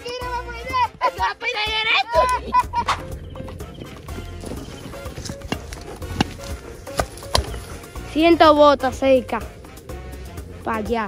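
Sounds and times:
background music: 0:00.0 - 0:11.0
footsteps running on grass: 0:03.2 - 0:08.1.

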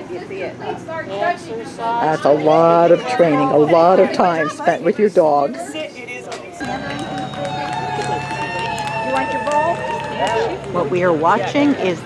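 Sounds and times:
crowd chatter: 0:00.0 - 0:12.0
steady high-pitched tone: 0:06.6 - 0:11.9.

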